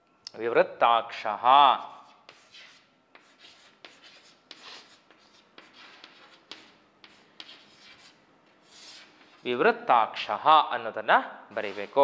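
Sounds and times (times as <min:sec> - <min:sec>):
chalk scraping on chalkboard: 0:01.7 - 0:09.5
man speaking: 0:09.4 - 0:12.0.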